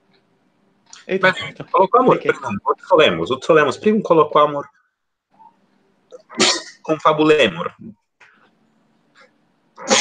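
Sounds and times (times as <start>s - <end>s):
person sneezing: 9.8s - 10.0s.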